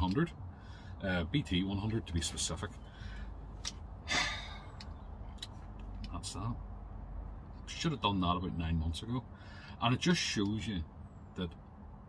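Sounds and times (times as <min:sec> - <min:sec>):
man breathing out: 0:04.0 - 0:04.8
short sigh: 0:04.0 - 0:04.8.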